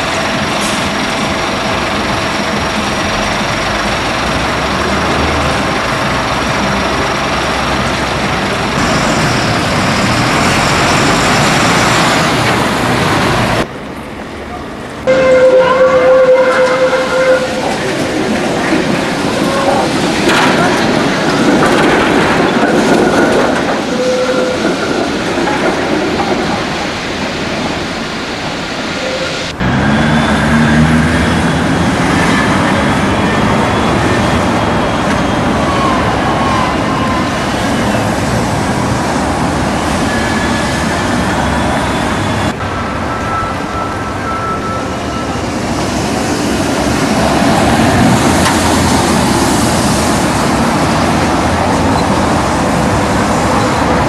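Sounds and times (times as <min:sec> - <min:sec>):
road traffic: 0:00.0 - 0:54.0
trams running on rails: 0:00.0 - 0:54.0.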